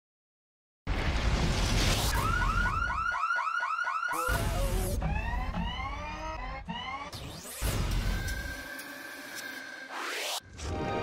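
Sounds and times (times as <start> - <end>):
rising electronic swoops: 3.9 - 10.4.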